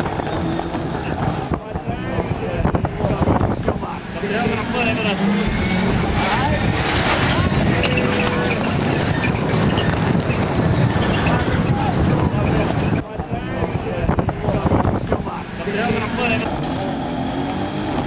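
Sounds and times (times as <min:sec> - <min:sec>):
race car engines revving: 0:00.0 - 0:18.0.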